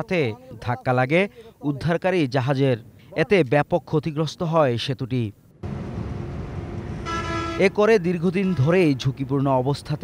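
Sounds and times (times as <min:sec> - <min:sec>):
car horn: 0:05.6 - 0:08.7
traffic rumble: 0:05.6 - 0:10.0.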